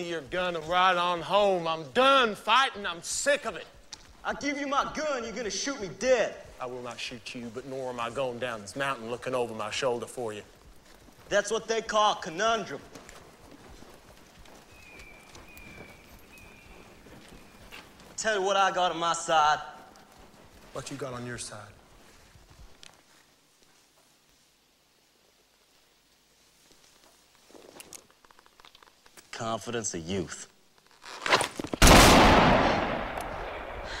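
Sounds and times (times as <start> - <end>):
faint horse hoof steps: 0.0 - 31.8
loud gunshot with echo: 31.8 - 33.9.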